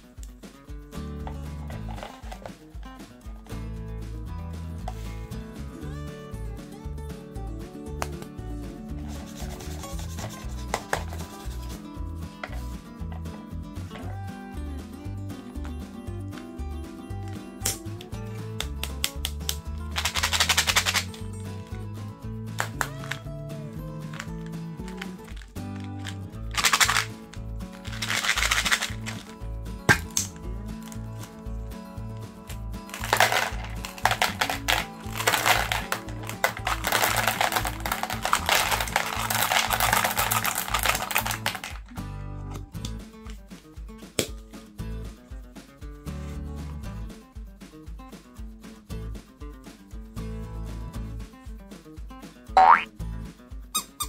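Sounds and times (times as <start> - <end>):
background music: 0.0 - 54.0
candy rattling in plastic jar: 1.7 - 2.5, 19.9 - 21.3, 24.0 - 31.4, 32.8 - 41.9.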